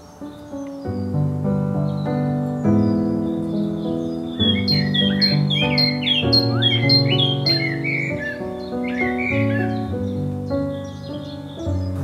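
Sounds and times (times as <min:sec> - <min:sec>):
bird rapid high chirps: 0:00.0 - 0:12.0
music of sustained chords: 0:00.0 - 0:12.0.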